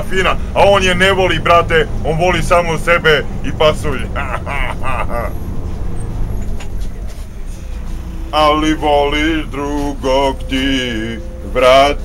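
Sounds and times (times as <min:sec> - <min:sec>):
bus low rumble: 0:00.0 - 0:12.0.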